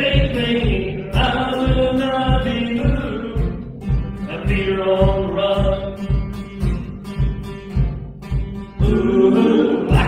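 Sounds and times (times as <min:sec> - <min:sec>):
man singing: 0:00.0 - 0:06.9, 0:08.8 - 0:10.0
guitar: 0:00.0 - 0:10.0
steady low beat: 0:00.0 - 0:10.0.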